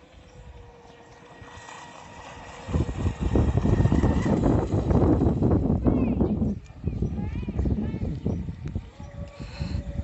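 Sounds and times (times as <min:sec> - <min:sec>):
distant motor whining: 0:00.0 - 0:06.4
wind rumble on microphone: 0:00.0 - 0:10.0.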